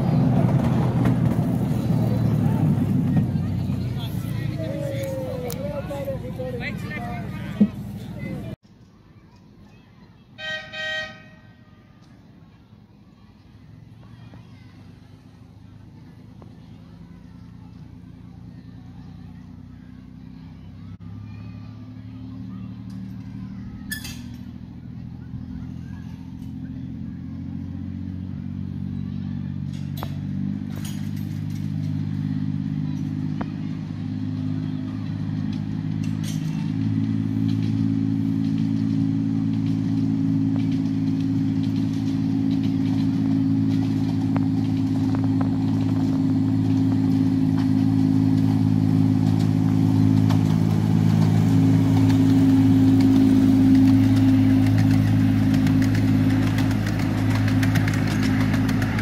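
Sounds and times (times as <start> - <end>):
diesel locomotive passing: 0.0 - 8.6, 10.3 - 59.0.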